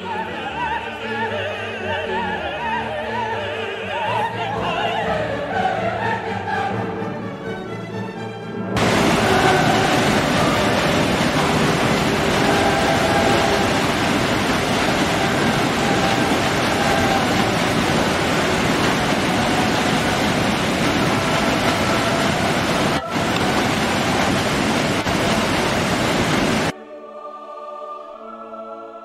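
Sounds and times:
waterfall rushing: 8.8s - 26.7s.

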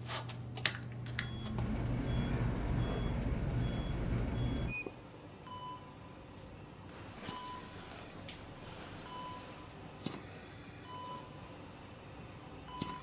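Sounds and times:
electronic monitor beeps: 1.2s - 4.9s
elevator humming: 1.2s - 4.9s
hiss: 10.0s - 10.8s.

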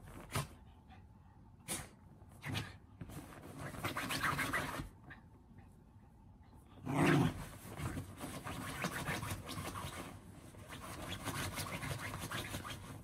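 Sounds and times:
dog scratching at a blanket: 3.1s - 4.9s, 7.0s - 13.0s.

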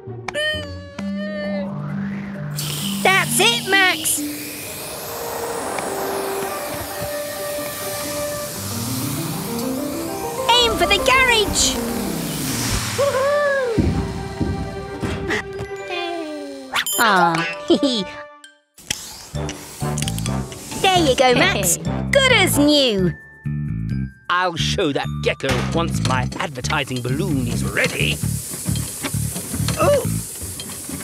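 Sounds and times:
background music: 0.0s - 18.7s, 19.3s - 28.5s
air hissing out of tyre: 2.6s - 10.4s, 11.7s - 14.4s, 18.8s - 21.0s, 27.0s - 31.0s
quick musical runs: 2.7s - 15.4s.

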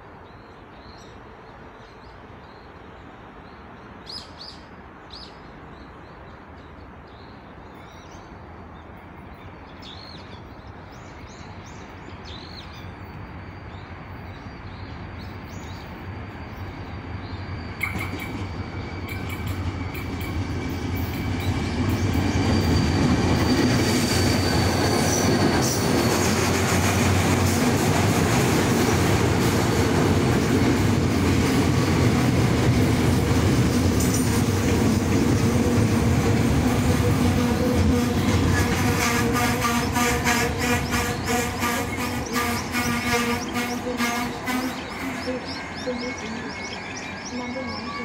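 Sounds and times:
passenger train rumbling past: 0.0s - 48.0s.

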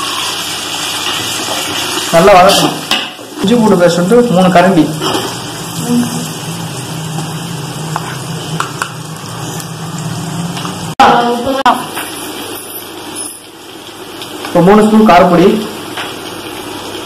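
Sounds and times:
food sizzling in oil: 0.0s - 17.0s.

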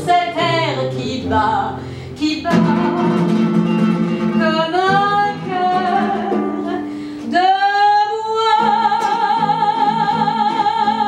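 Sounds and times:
classical guitar: 0.0s - 11.0s
woman singing: 0.0s - 11.0s.

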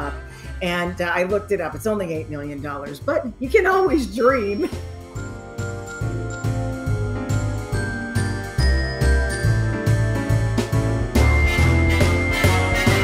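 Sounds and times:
instrumental music with bell tones: 4.2s - 13.0s.

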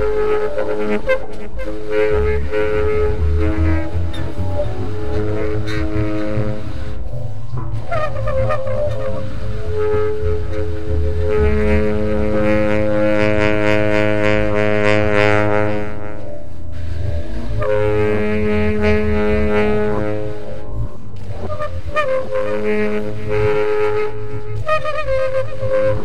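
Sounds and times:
low bass rumble: 0.0s - 26.0s
tenor saxophone long notes: 0.0s - 26.0s.

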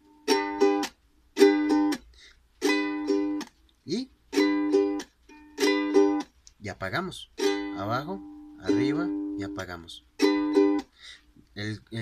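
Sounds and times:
ukulele strummed with muted chops: 0.0s - 6.6s, 7.4s - 11.0s.

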